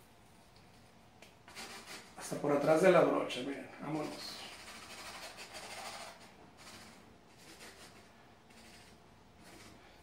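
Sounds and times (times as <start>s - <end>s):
paintbrush scraping canvas: 1.4s - 2.4s, 3.8s - 10.0s.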